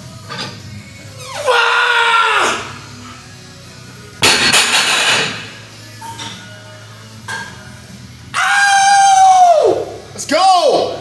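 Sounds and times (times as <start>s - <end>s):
man yelling high-pitched: 8.6s - 11.0s.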